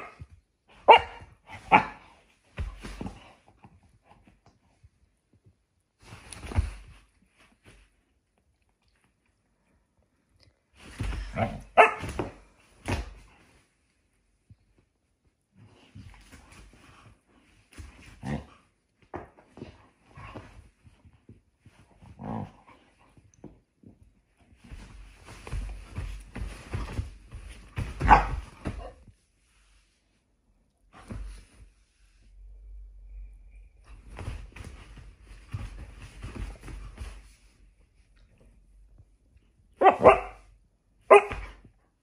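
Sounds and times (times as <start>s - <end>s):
rustling and scratching of sheets: 0.0s - 9.3s, 10.7s - 32.6s, 33.6s - 42.0s
puppy barking: 0.8s - 2.0s, 11.7s - 12.1s, 39.8s - 40.4s, 41.1s - 41.5s.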